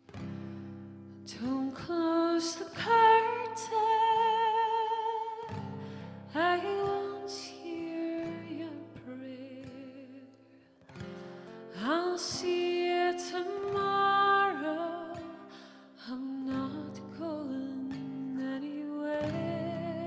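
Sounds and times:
acoustic guitar: 0.0s - 20.0s
woman singing with vibrato: 1.3s - 10.4s, 11.7s - 20.0s.

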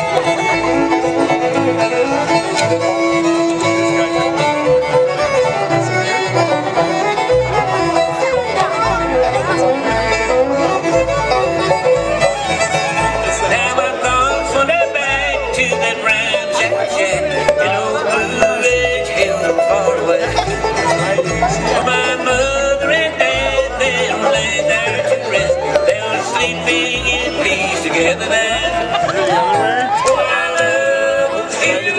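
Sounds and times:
acoustic guitar: 0.0s - 31.9s
banjo: 0.0s - 31.9s
fiddle: 0.0s - 31.9s
mandolin: 0.0s - 31.9s
upright bass: 0.0s - 31.9s.

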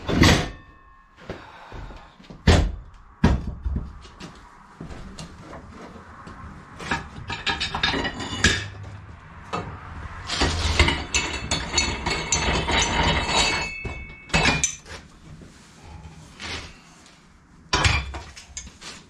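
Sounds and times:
tire knocking on steel post: 2.3s - 4.0s
metallic clattering and clinks: 6.9s - 8.8s, 10.3s - 15.0s.

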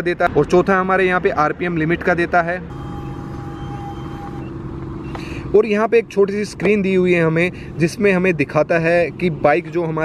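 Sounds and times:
vehicle engine running: 2.1s - 10.0s.

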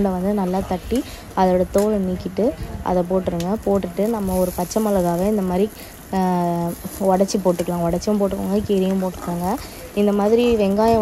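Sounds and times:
faint sizzle of frying in oil: 0.0s - 11.0s.

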